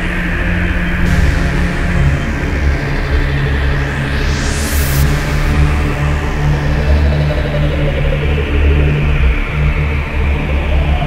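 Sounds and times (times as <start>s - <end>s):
pulsing synth bass drone: 0.0s - 11.0s
bright synth hiss: 1.0s - 7.3s
rising synth middle tone: 1.0s - 7.9s.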